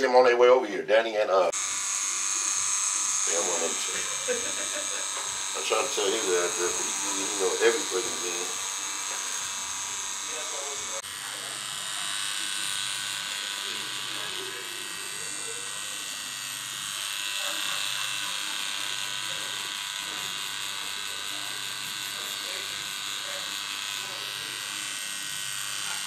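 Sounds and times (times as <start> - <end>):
tattoo machine buzzing: 1.4 - 26.0.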